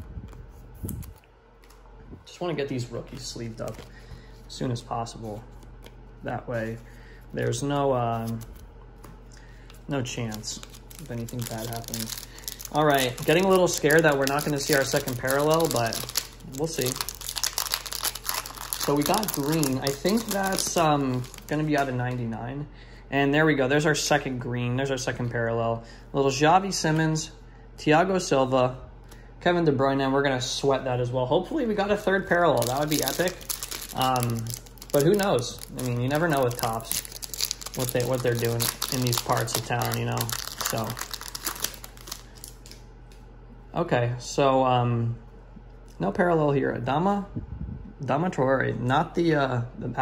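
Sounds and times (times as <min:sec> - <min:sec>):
person speaking: 0:09.9 - 0:25.4, 0:30.9 - 0:42.3
foil wrapper tearing and crinkling: 0:10.2 - 0:21.9, 0:32.5 - 0:42.8.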